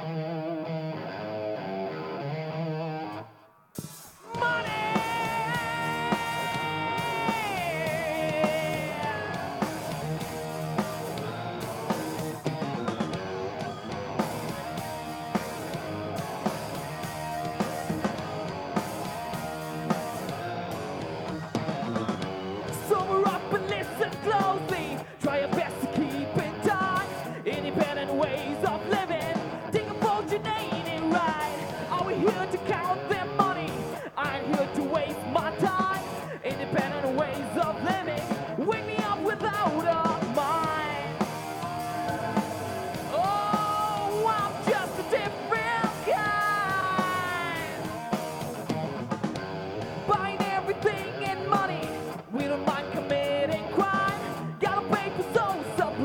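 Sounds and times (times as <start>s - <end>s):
electric guitar: 0.0s - 56.0s
drums: 3.1s - 56.0s
male lead vocal: 4.2s - 11.9s, 21.5s - 48.1s, 49.9s - 56.0s.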